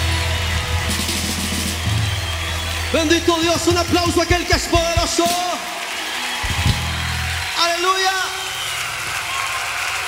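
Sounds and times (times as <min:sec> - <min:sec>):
instrumental praise music: 0:00.0 - 0:10.0
sustained bass: 0:06.5 - 0:07.5.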